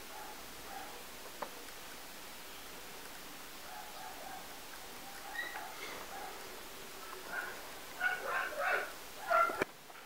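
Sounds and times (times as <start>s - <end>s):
dog yelping: 5.1s - 6.4s, 7.3s - 9.6s.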